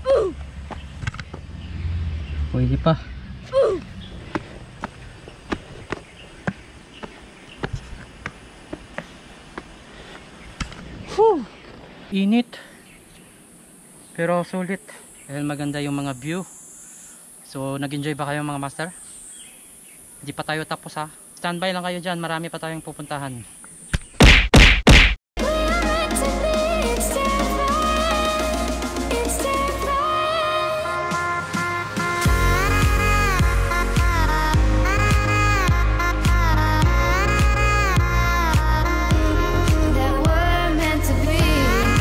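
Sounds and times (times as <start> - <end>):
footsteps on stone path: 3.8 - 11.8
loud whack sound effects: 24.2 - 25.2
music with steady beat: 25.4 - 30.1, 31.0 - 42.0.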